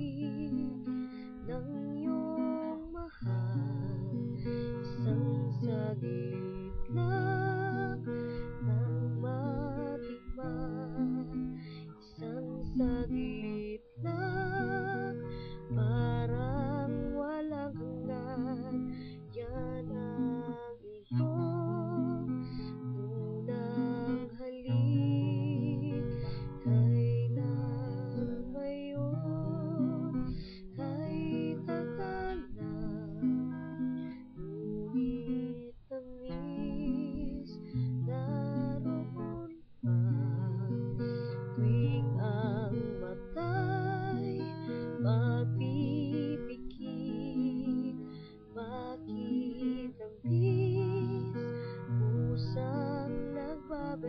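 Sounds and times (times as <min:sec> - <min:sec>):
acoustic guitar strumming: 0:00.0 - 0:54.0
woman singing a ballad: 0:00.0 - 0:54.0.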